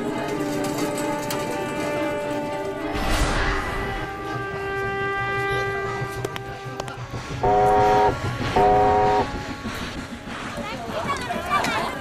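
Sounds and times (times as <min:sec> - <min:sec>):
old car horn honking: 0:07.4 - 0:09.3.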